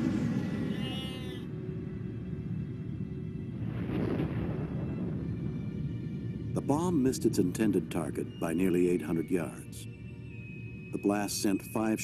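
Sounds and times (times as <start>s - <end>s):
low rumble of blast: 0.0s - 12.0s
ominous music: 0.0s - 12.0s.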